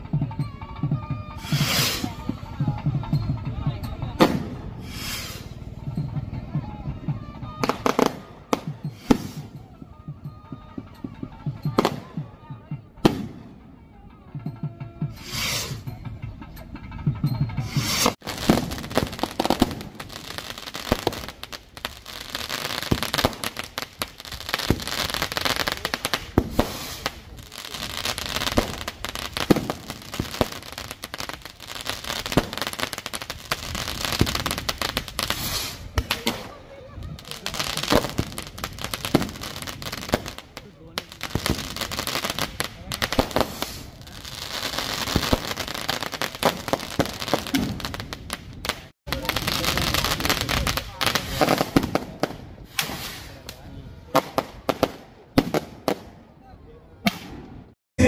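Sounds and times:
fireworks bangs and crackling: 0:00.0 - 0:13.8, 0:14.4 - 0:56.3, 0:56.9 - 0:57.8.

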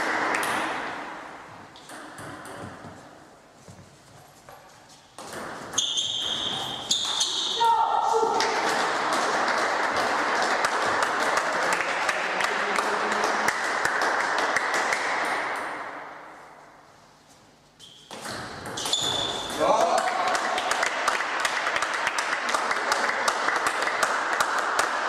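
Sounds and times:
high-pitched celebration shouts: 0:07.5 - 0:08.4
spectators clapping and cheering: 0:08.3 - 0:15.4, 0:19.8 - 0:25.0.

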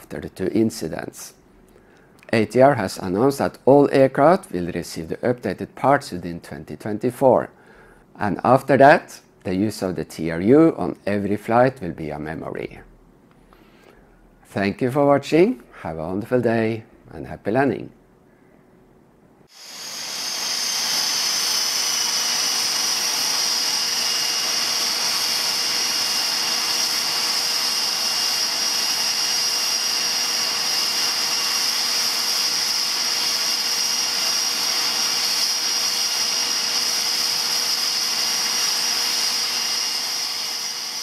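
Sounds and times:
hiss: 0:19.5 - 0:37.6
turboprop engine whine: 0:19.6 - 0:29.8.

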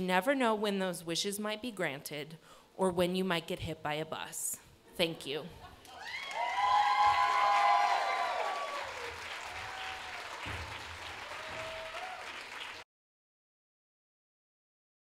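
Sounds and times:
audience cheering: 0:05.9 - 0:12.8
audience clapping: 0:05.9 - 0:12.8.

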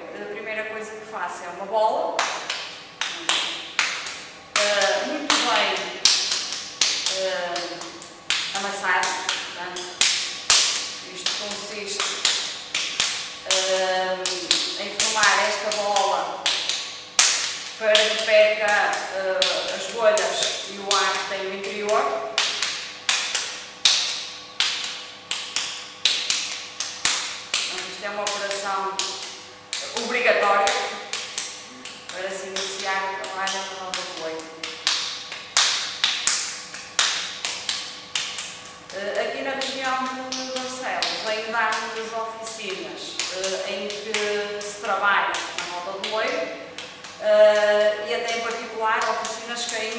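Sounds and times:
wet clay slapped between hands: 0:02.2 - 0:13.6, 0:14.2 - 0:18.2, 0:22.4 - 0:38.9
person speaking: 0:29.8 - 0:34.6.

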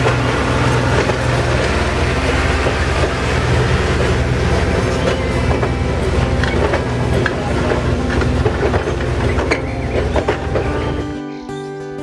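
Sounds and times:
wheels clicking on rails: 0:00.0 - 0:11.2
train coach rumbling past: 0:00.0 - 0:11.4
acoustic guitar music: 0:00.0 - 0:12.0.

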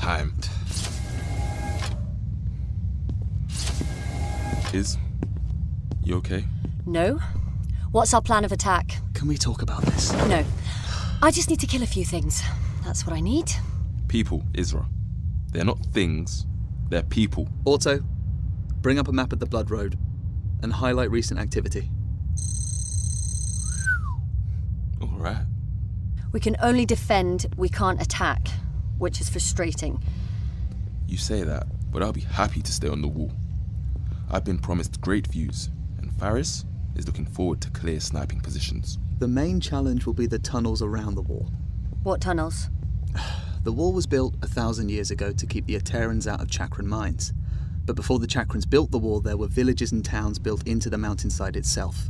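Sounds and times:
constant low hum: 0:00.0 - 0:52.0
low ambient rumble: 0:00.0 - 0:52.0
sliding door hiss and whine: 0:00.4 - 0:02.2, 0:03.4 - 0:05.0
short electronic chirp: 0:22.4 - 0:23.9
high electronic tone: 0:22.4 - 0:24.0.

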